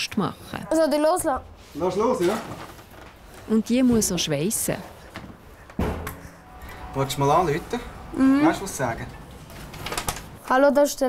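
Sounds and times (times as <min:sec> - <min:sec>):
heavy thud with low ring: 0:05.8 - 0:06.4.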